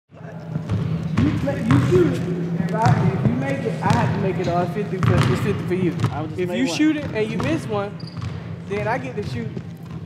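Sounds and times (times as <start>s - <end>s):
basketball bouncing on wooden floor: 0.5s - 2.1s, 5.0s - 5.4s, 6.0s - 6.2s, 7.0s - 10.0s.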